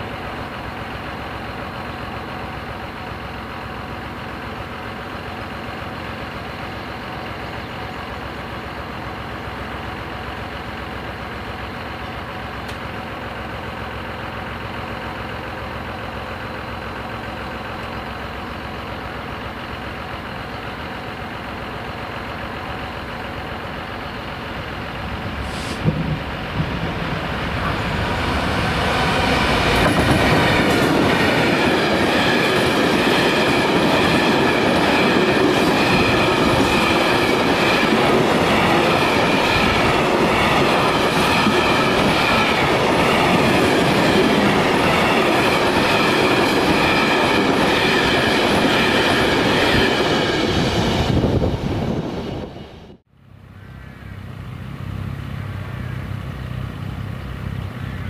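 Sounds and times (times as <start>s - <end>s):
freight train rolling past: 0.0s - 58.0s.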